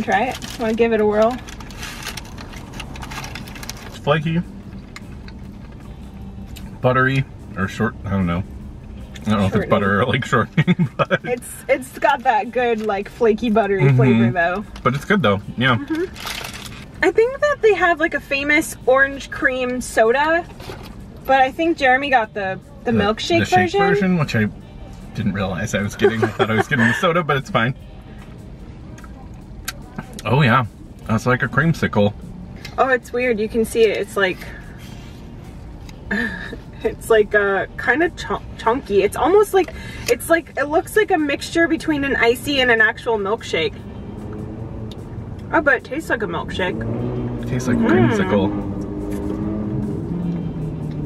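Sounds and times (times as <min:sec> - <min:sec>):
faint music: 0:00.0 - 0:51.0
low rumble inside car: 0:00.0 - 0:51.0
car cabin rumble: 0:09.1 - 0:24.5.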